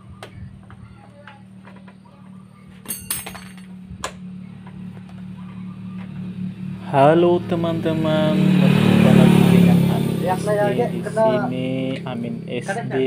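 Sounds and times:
steady low hum: 0.0 - 13.0
light metallic clinks: 2.8 - 3.8.

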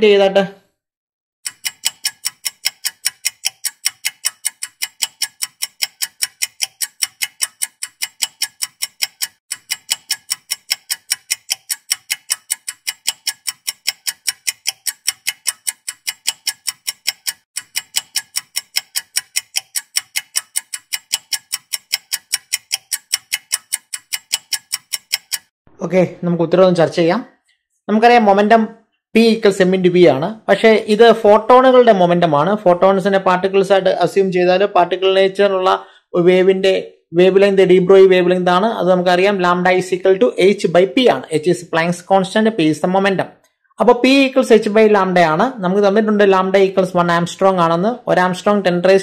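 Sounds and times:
fast clock ticking: 1.4 - 25.5, 37.4 - 43.1, 43.8 - 49.0.

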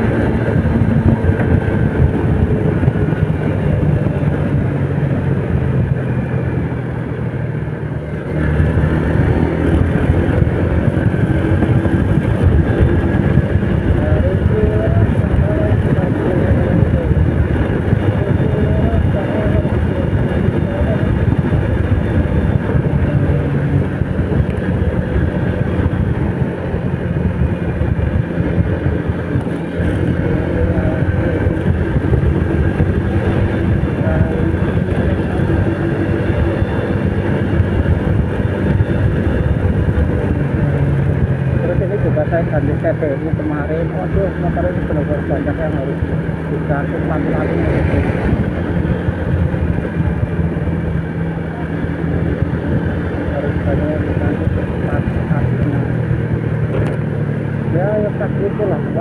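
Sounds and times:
motorcycle engine running: 0.0 - 59.0
road rumble: 0.0 - 59.0
wind on microphone: 0.0 - 59.0.

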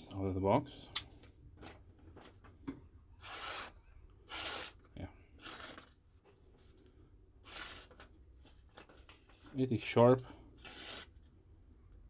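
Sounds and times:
knife slicing paper: 10.6 - 11.1.

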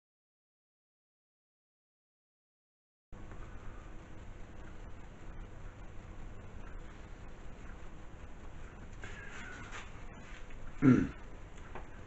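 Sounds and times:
low room noise: 3.2 - 12.0.

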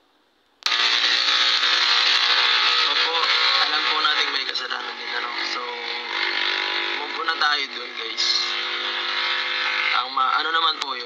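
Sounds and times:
man talking: 2.8 - 5.9, 7.0 - 8.6, 9.9 - 11.0.

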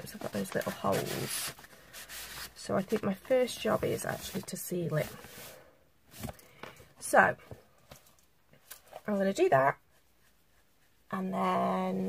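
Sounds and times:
hand rubbing paper envelope: 0.0 - 5.4
soft paper rustle: 0.0 - 6.9.

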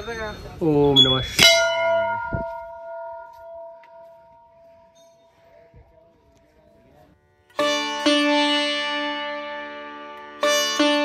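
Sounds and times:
brass bell ringing: 1.0 - 5.6.

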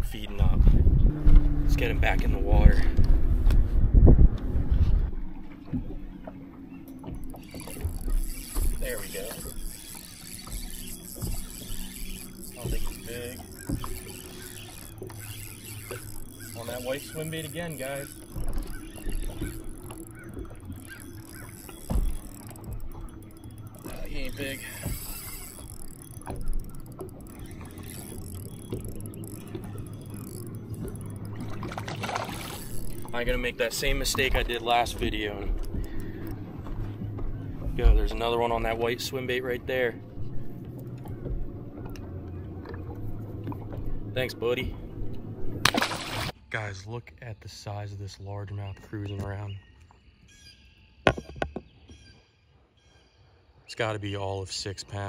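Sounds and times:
low bumps and thump on boat: 0.0 - 46.3, 51.0 - 52.1
low hum: 0.0 - 46.4
water lapping against boat hull: 0.0 - 46.4.

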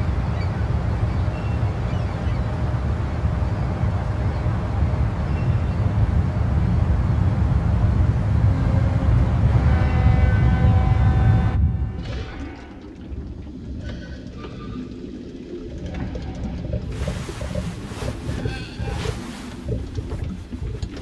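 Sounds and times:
loud low rumble: 0.0 - 13.8.

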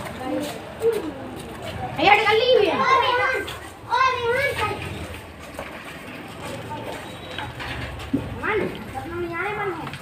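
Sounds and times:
street background noise: 0.0 - 10.0
boys talking loudly: 0.2 - 5.4, 8.2 - 10.0.

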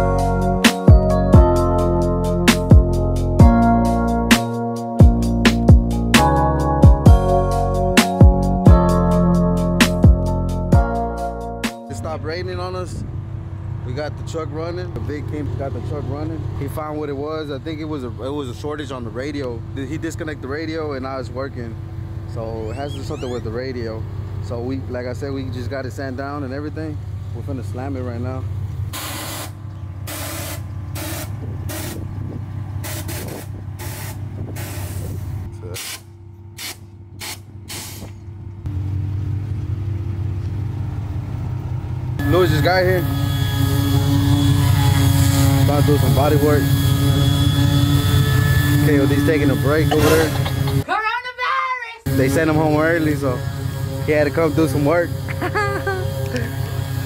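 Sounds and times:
truck engine idling: 0.0 - 50.8, 52.1 - 57.0
man talking: 11.9 - 13.0, 13.8 - 28.5, 42.2 - 43.1, 45.6 - 46.7, 48.8 - 50.4, 52.1 - 55.2
air suspension hissing: 28.9 - 38.3.

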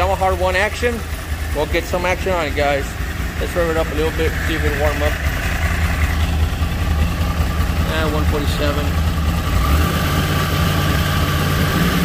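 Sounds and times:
motorcycle engine idling: 0.0 - 11.8.

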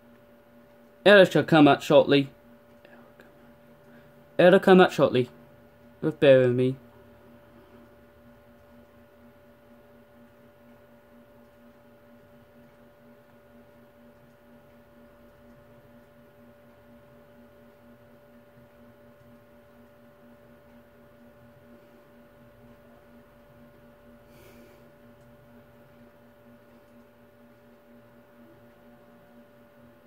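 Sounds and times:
faint electrical hum: 0.0 - 30.0.

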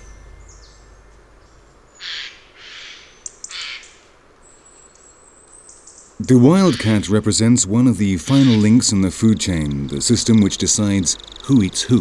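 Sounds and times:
harsh rasping bird calls: 0.0 - 4.7, 5.6 - 12.0.

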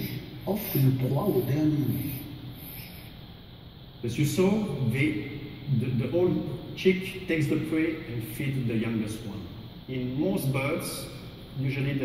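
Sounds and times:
man's amplified voice: 0.0 - 2.3, 4.0 - 12.0
faint steady hiss: 0.0 - 12.0.

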